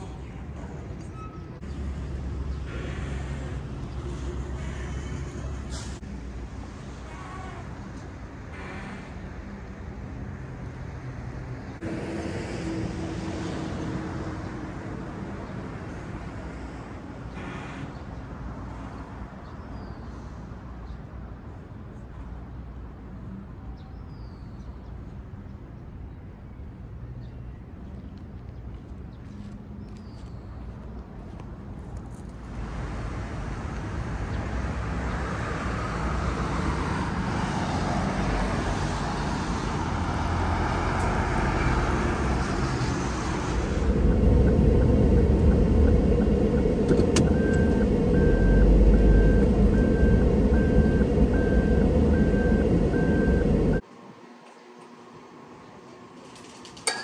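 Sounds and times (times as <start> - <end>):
heavy vehicle rumble: 0.0 - 19.0, 28.0 - 53.8
traffic hiss: 1.6 - 9.7, 15.8 - 19.2.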